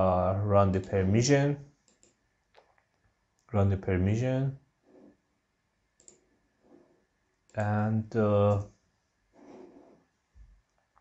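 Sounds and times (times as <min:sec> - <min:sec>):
faint computer mouse click: 0:06.0 - 0:06.2.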